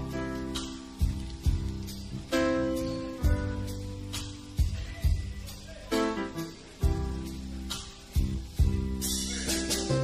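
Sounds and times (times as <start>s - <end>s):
bass and drum hits: 0.0s - 5.5s, 6.8s - 10.0s
slow blues guitar chords: 0.0s - 10.0s.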